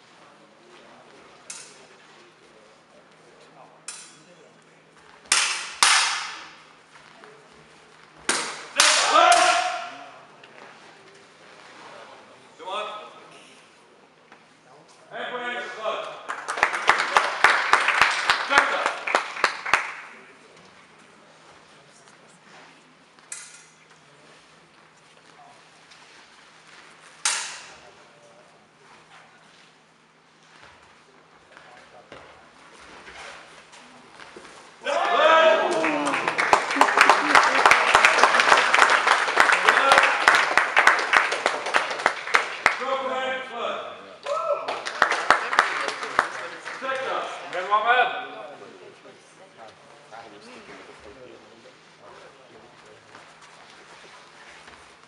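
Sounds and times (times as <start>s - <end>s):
sabres striking with echo: 3.8s - 4.3s, 5.2s - 6.8s, 8.2s - 10.1s, 27.1s - 27.8s
loud drawn-out shout: 8.8s - 10.0s, 34.8s - 36.6s.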